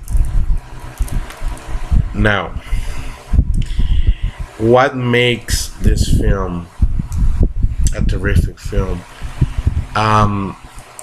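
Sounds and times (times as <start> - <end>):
low rumbles: 0.0 - 10.8.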